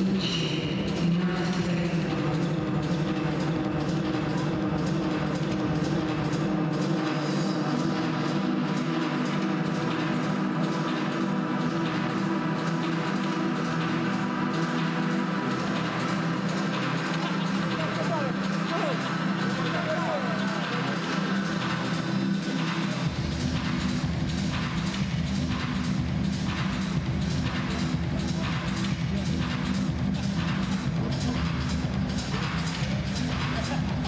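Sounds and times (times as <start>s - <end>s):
held low chords: 0.0s - 34.0s
music with steady beat: 0.0s - 34.0s.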